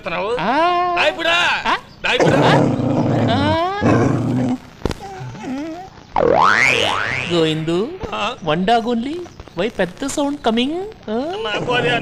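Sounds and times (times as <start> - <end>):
loud animal roar: 2.1 - 5.7, 11.4 - 12.0.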